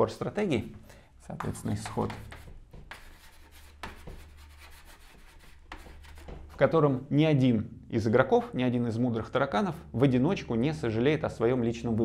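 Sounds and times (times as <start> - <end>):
chalk scratching on blackboard: 1.4 - 6.7.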